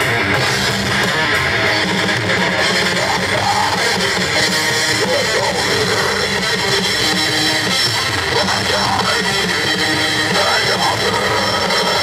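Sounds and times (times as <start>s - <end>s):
live metal band playing: 0.0s - 12.0s.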